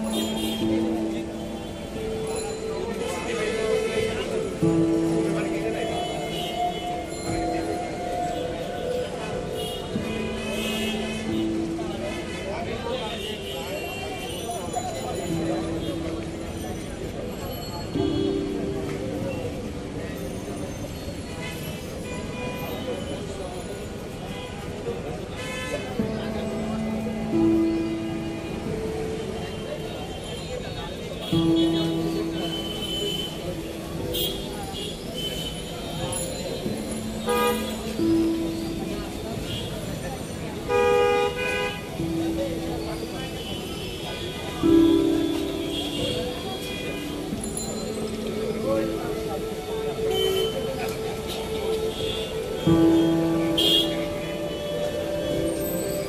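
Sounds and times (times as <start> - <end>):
vehicle horns honking: 0.0 - 1.0, 31.3 - 36.2, 36.8 - 38.6, 40.6 - 42.0, 51.5 - 56.0
crowd talking: 0.0 - 56.0
street noise: 0.0 - 56.0.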